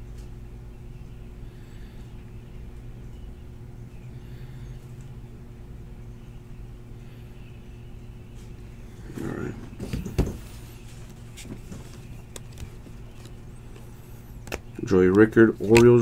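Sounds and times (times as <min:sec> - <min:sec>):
steady low hum: 0:00.0 - 0:16.0
cards clicking and sliding: 0:11.4 - 0:16.0.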